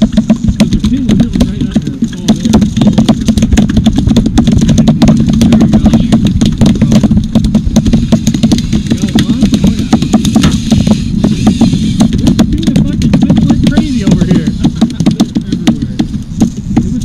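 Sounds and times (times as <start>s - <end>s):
boat engine humming: 0.0s - 17.0s
sharp clicks and knocks: 0.0s - 17.0s.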